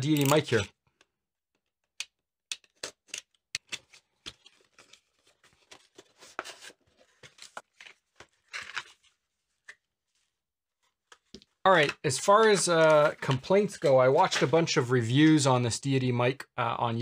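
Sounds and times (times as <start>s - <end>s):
cardboard and packaging rustling: 3.6s - 10.4s, 11.0s - 14.7s.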